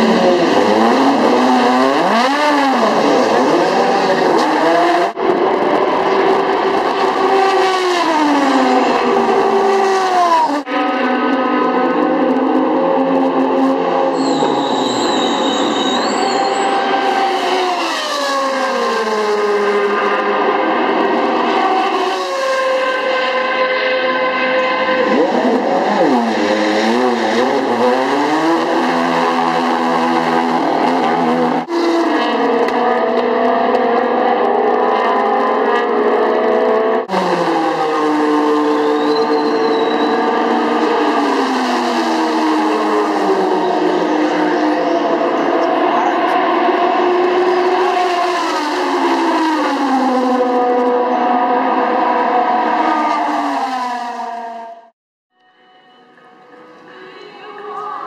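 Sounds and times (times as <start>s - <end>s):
race car engine revving: 0.0s - 54.9s.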